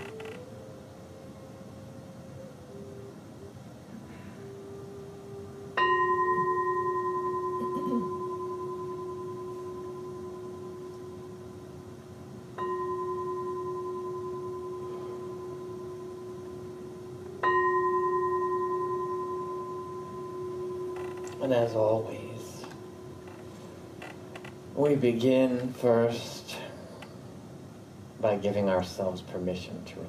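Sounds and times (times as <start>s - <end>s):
singing bowl struck with mallet: 5.8s - 11.4s, 12.6s - 16.6s, 17.4s - 21.5s.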